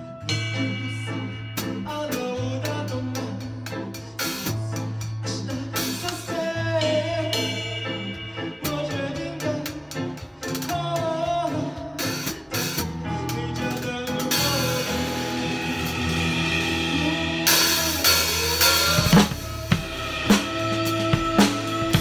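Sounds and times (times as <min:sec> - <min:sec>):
drum kit groove: 0:00.0 - 0:22.0
rock-pop song: 0:00.0 - 0:22.0.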